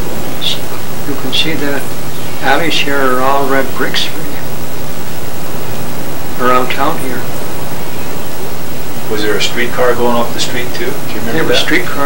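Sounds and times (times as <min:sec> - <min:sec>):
faint low hum: 0:00.0 - 0:12.0
steady background hiss: 0:00.0 - 0:12.0.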